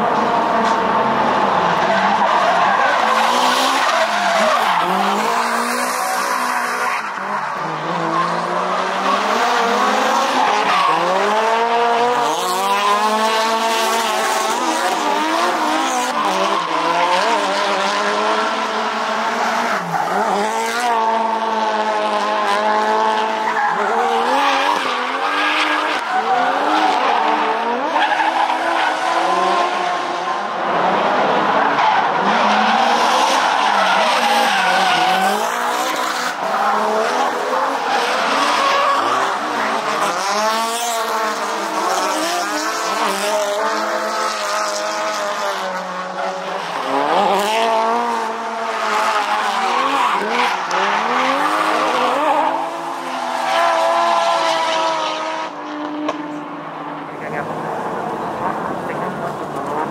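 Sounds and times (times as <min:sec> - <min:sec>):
car engines revving: 0:00.0 - 0:59.9.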